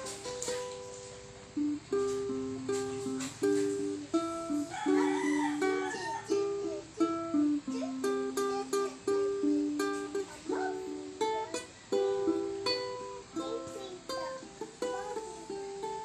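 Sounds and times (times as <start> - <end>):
fingerstyle ukulele: 0.0 - 16.0.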